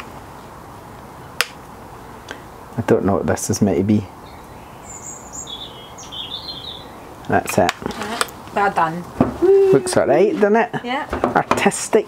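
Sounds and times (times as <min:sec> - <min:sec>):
small bird chirping: 0:04.2 - 0:07.2.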